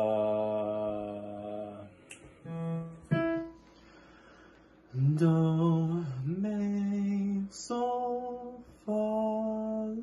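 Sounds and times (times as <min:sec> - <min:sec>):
man singing long held note: 0:00.0 - 0:03.0.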